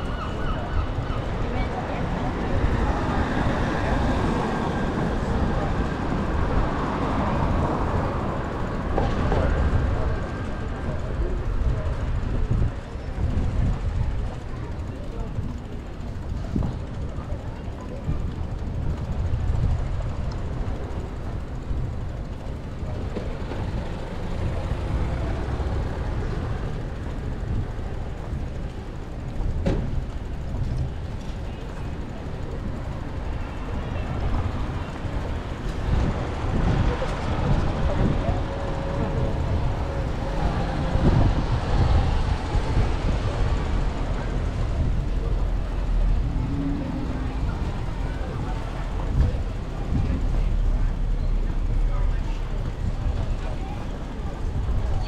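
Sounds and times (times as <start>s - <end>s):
road traffic noise: 0.0s - 55.0s
wind rumbling on microphone: 0.0s - 55.0s.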